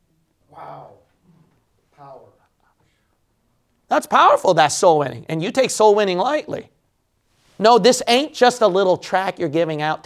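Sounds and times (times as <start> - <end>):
man speaking loudly: 3.9 - 6.7, 7.6 - 10.0.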